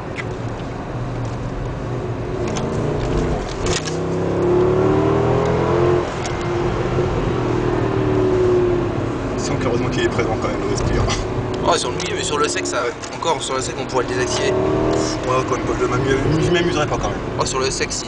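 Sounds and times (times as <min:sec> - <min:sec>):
car engine accelerating: 0:00.3 - 0:18.0.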